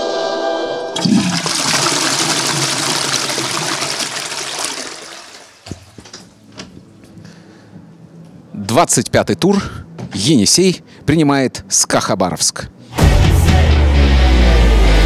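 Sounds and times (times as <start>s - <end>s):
toilet flushing: 0.9s - 6.1s.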